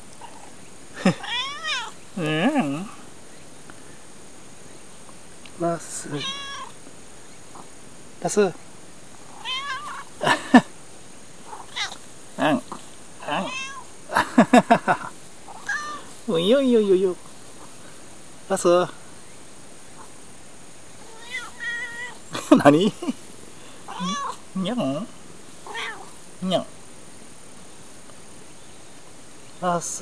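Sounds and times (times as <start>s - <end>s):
cat meowing: 1.1s - 2.0s, 6.0s - 6.8s, 9.4s - 10.1s, 11.5s - 12.0s, 13.2s - 13.9s, 15.5s - 16.5s, 21.0s - 22.2s, 23.9s - 24.4s, 25.6s - 26.2s.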